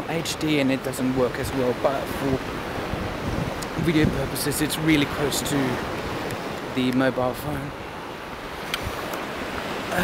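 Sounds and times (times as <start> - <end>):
surf washing on beach: 0.0 - 10.0
wind on microphone: 1.1 - 10.0.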